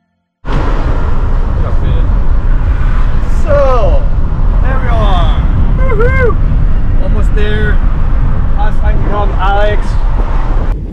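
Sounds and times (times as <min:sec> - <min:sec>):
car rumbling on the move: 0:00.4 - 0:10.9
voices: 0:03.2 - 0:07.9, 0:08.5 - 0:10.0.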